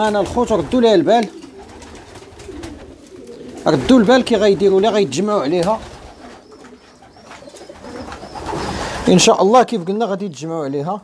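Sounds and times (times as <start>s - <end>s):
pigeons cooing softly: 0.3s - 9.2s.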